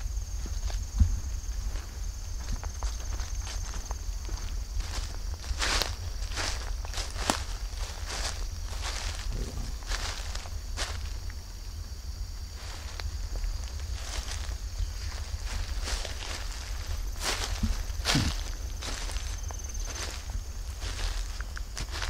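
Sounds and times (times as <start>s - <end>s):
footsteps crunching through leaves: 0.0s - 11.6s, 12.3s - 22.0s
high insect drone: 0.0s - 22.0s.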